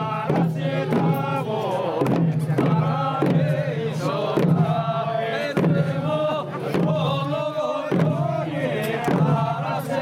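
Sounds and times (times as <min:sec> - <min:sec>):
hand drum beats: 0:00.0 - 0:09.8
group singing in unison: 0:00.0 - 0:10.0.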